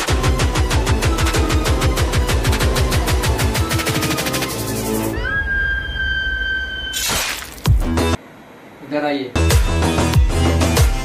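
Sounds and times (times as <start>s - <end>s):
high eerie tone: 4.6s - 7.1s.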